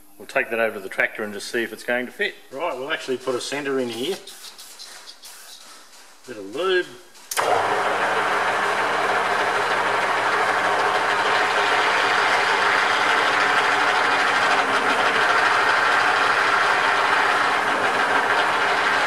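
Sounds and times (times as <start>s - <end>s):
metal lathe motor running: 7.4s - 19.0s.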